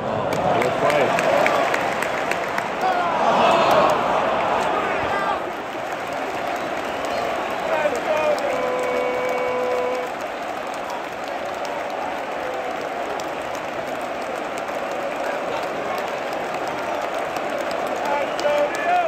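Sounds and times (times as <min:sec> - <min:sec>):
crowd chanting: 0:00.0 - 0:19.0
stadium crowd cheering: 0:00.0 - 0:19.0.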